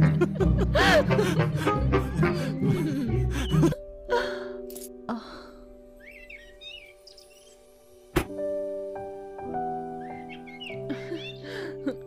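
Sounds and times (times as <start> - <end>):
quiet background music: 0.0 - 12.0
birds chirping: 6.0 - 8.1, 9.8 - 11.9.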